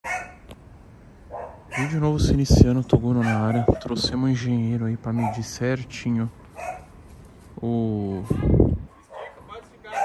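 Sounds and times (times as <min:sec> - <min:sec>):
dog bark: 0:00.0 - 0:00.4, 0:01.3 - 0:02.0, 0:03.2 - 0:04.0, 0:05.1 - 0:05.5, 0:06.6 - 0:06.9, 0:09.0 - 0:10.0
man speaking: 0:01.8 - 0:06.4, 0:07.6 - 0:08.6, 0:09.2 - 0:10.0.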